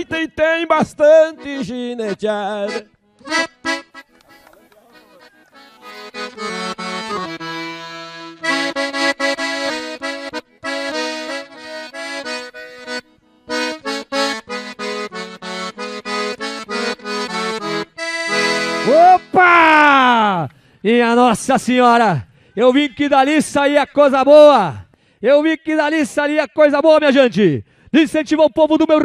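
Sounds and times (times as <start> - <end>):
accordion playing: 0.0 - 19.8.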